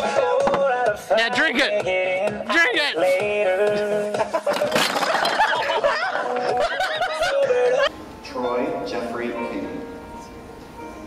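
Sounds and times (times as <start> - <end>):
people laughing and shrieking: 4.1 - 7.9
glasses clattering and splashing: 4.5 - 5.8.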